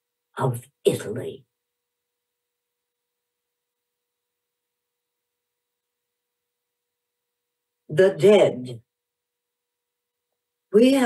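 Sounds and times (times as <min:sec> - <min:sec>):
woman speaking: 0:00.4 - 0:01.4, 0:07.9 - 0:08.8, 0:10.8 - 0:11.0.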